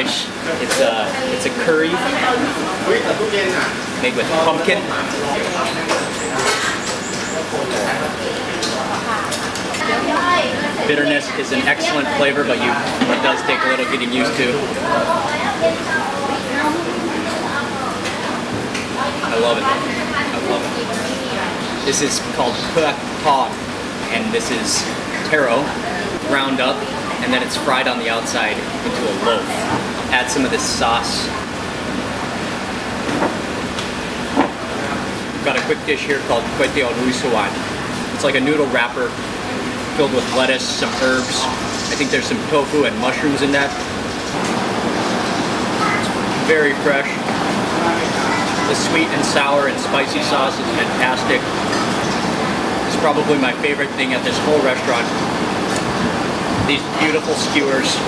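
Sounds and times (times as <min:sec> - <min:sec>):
people talking: 0:00.0 - 0:32.5, 0:34.7 - 0:44.0, 0:45.7 - 0:51.5, 0:52.9 - 0:55.3, 0:56.6 - 0:58.0
food court background noise: 0:00.0 - 0:58.0.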